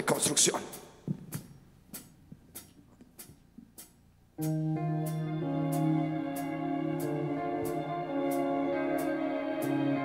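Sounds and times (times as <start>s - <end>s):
faint drumstick count-in ticks: 0.0s - 4.0s.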